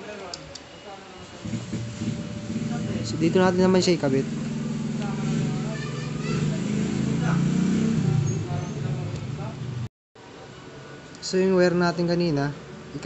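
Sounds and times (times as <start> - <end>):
indistinct voices: 1.4 - 9.8
steady low motor hum: 1.4 - 9.9.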